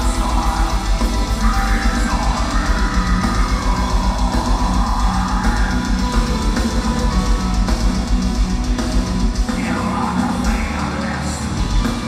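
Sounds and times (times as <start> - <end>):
live metal band playing: 0.0 - 12.0.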